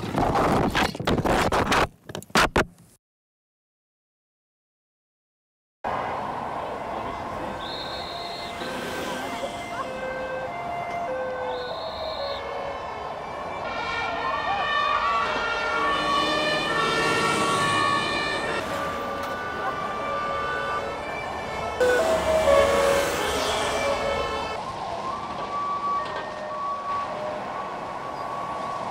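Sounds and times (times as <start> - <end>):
two-tone emergency sirens: 5.9 - 28.9.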